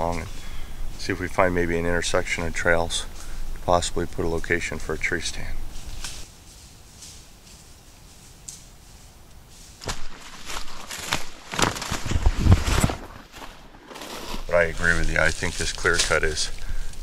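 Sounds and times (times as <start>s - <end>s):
footsteps crunching dry leaves: 5.6s - 16.6s.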